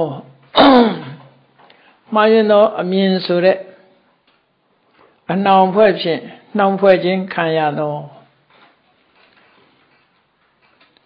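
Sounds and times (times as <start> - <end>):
man clearing his throat: 0.5 - 1.4.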